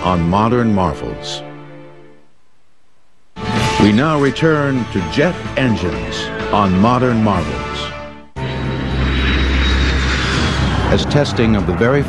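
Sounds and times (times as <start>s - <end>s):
jet aircraft flying past: 8.4s - 12.0s.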